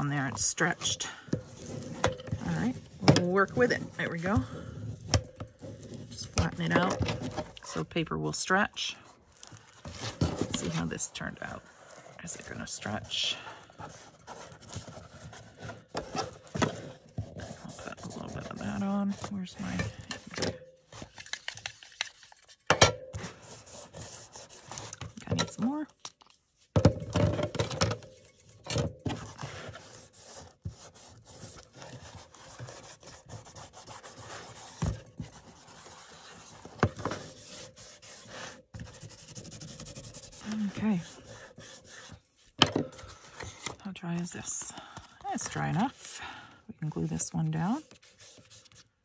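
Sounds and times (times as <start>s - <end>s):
foam tool rubbing paper: 23.3s - 25.0s, 29.3s - 42.4s.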